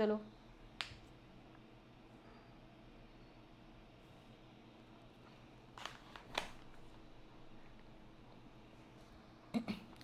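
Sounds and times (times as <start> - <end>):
woman's voice: 0.0 - 0.3.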